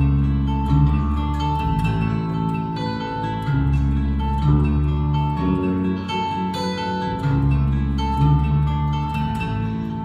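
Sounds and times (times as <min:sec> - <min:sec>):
acoustic guitars strumming: 0:00.0 - 0:10.0
bass guitar line: 0:00.0 - 0:10.0
mandolin: 0:00.0 - 0:10.0.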